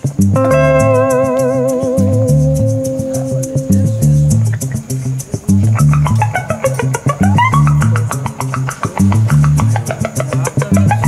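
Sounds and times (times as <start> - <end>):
electric guitar: 0.0 - 11.0
low bass figure: 0.0 - 11.0
sharp percussive strokes: 0.0 - 11.0.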